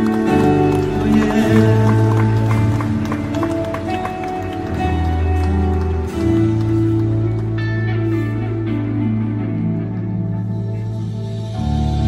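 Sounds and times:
instrumental hymn music: 0:00.0 - 0:12.0.

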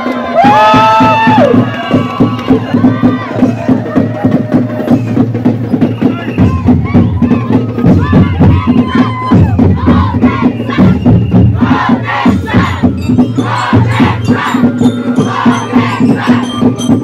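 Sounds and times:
group chanting and shouting: 0:00.0 - 0:17.0
loud festival drumming: 0:00.0 - 0:17.0.

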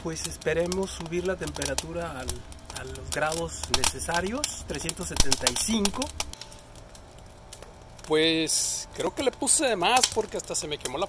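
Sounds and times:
firewood crackling: 0:00.0 - 0:11.0.

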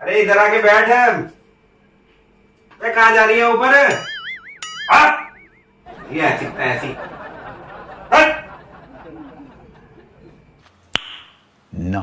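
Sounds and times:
warbling electronic tone: 0:03.9 - 0:05.8
bark-like yelp: 0:04.8 - 0:05.4, 0:08.0 - 0:08.6.

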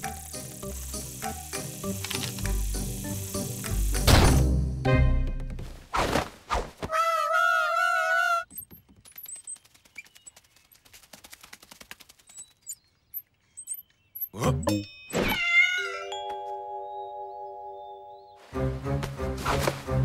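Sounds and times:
wavering cartoon cry: 0:06.9 - 0:08.4
held musical chord: 0:16.1 - 0:19.0.

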